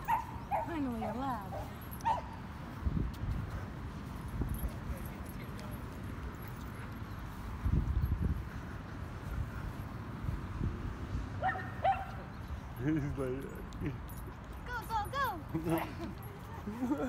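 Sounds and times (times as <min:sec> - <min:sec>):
man laughing: 0:15.5 - 0:17.0.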